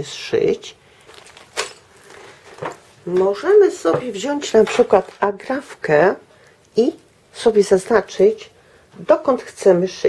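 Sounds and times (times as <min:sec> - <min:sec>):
handling knocks and rustles: 0:01.0 - 0:05.3.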